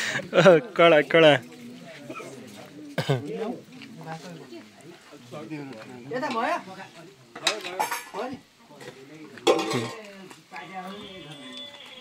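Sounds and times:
steel bowl and utensils clinking: 0:08.8 - 0:10.1.

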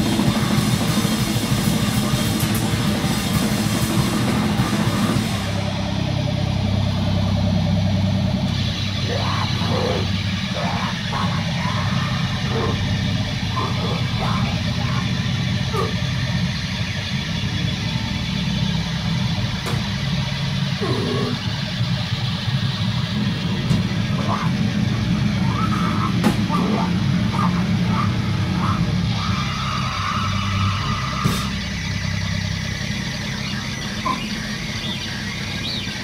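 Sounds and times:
amplifier droning hum: 0:00.0 - 0:36.0
metal band playing: 0:00.0 - 0:36.0
people shouting: 0:08.8 - 0:16.3, 0:24.2 - 0:31.8.

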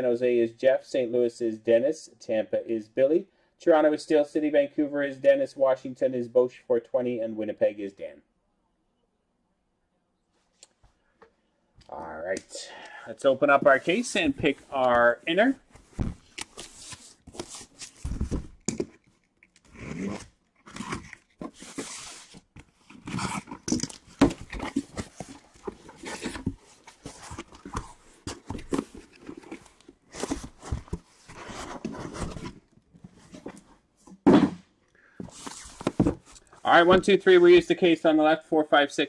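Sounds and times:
cardboard scraping and knocking: 0:15.8 - 0:19.0, 0:23.0 - 0:34.6, 0:35.2 - 0:37.1.

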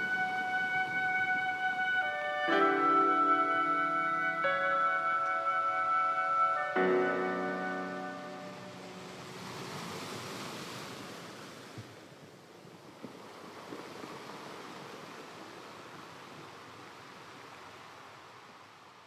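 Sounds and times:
piano notes: 0:00.0 - 0:09.6.

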